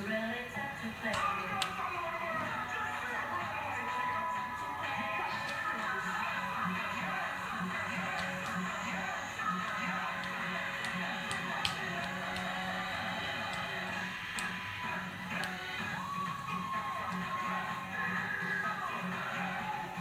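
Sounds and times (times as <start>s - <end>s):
music with steady beat: 0.0s - 20.0s.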